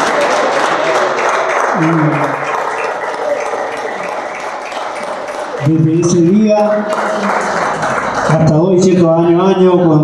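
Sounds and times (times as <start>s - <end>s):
audience applauding: 0.0s - 8.8s
man's voice: 5.6s - 7.4s, 8.3s - 10.0s.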